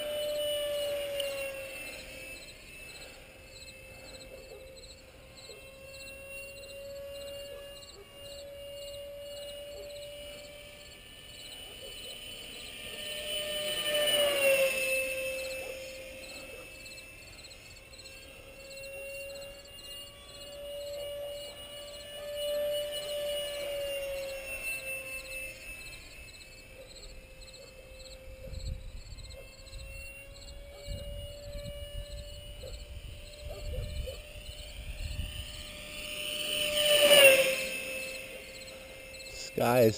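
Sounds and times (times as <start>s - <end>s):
model jet ducted-fan whine: 0.0s - 39.9s.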